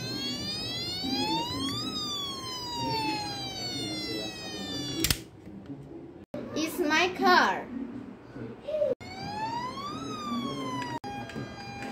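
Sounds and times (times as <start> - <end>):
police siren wail: 0.0 - 5.1, 9.0 - 11.9.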